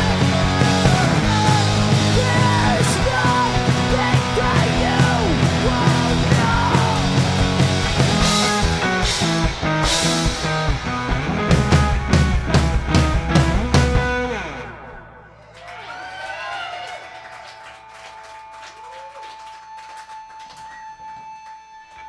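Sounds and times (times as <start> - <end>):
drum kit hits: 0.0 - 14.4
electric guitar: 0.0 - 15.6, 18.1 - 22.0.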